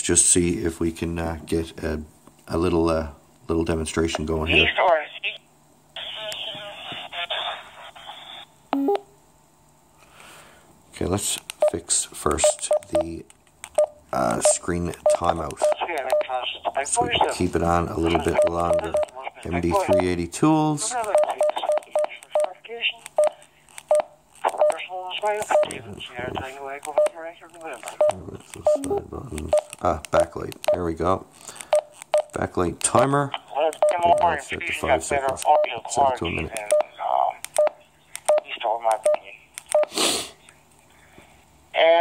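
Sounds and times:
tinny radio voice through speaker: 0:04.4 - 0:05.4, 0:06.0 - 0:08.4, 0:33.3 - 0:37.4, 0:38.4 - 0:39.5, 0:41.8 - 0:42.0
two-tone electronic beep: 0:08.8 - 0:09.1.

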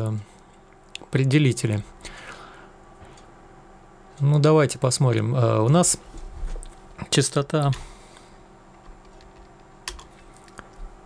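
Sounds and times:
keyboard keystrokes clicking: 0:08.8 - 0:10.1.

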